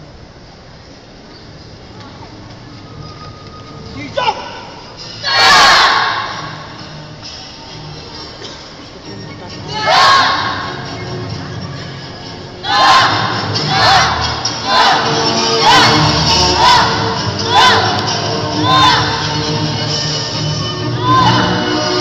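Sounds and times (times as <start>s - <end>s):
children shouting in unison: 5.2s - 6.4s, 9.7s - 10.6s, 12.6s - 19.3s, 21.0s - 21.6s.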